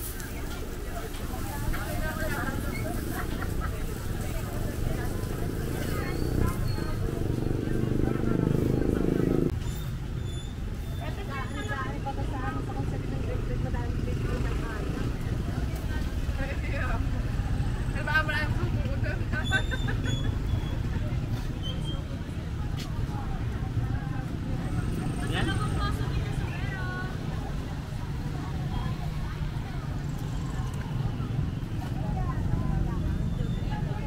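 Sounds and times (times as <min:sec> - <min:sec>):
low vehicle engine rumble: 0:00.0 - 0:34.0
voices and chatter: 0:00.0 - 0:34.0.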